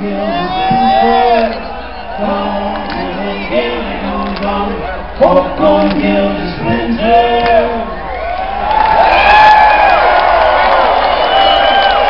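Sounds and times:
crowd cheering and whooping: 0.0s - 5.2s, 7.6s - 12.0s
people holding long shouts: 0.1s - 3.8s, 7.6s - 12.0s.

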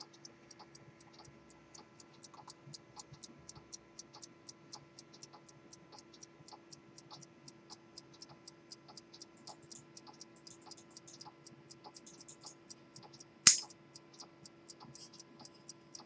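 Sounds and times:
pocket watch ticking: 0.0s - 16.0s
loud sharp click: 13.4s - 13.8s.

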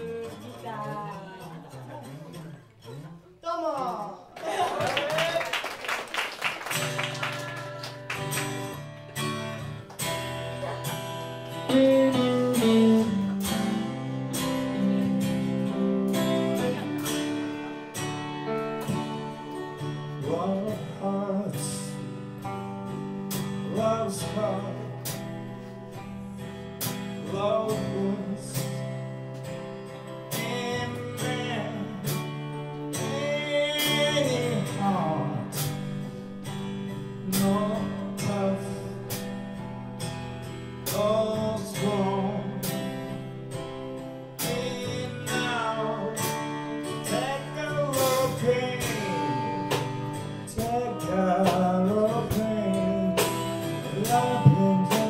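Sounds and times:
strummed acoustic guitar: 0.0s - 3.4s, 6.6s - 55.0s
electric bass: 34.0s - 55.0s
drum kit: 39.0s - 40.2s, 46.2s - 55.0s.

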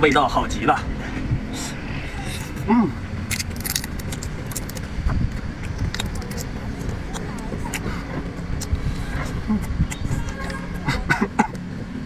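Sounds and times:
steady low rumble: 0.0s - 12.0s
prawn shell clicks and crackles: 3.3s - 7.8s.

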